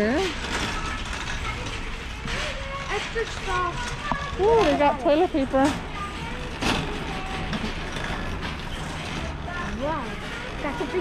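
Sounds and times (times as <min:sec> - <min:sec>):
low hum of warehouse store: 0:00.0 - 0:11.0
metal cart rattling on concrete: 0:00.0 - 0:11.0.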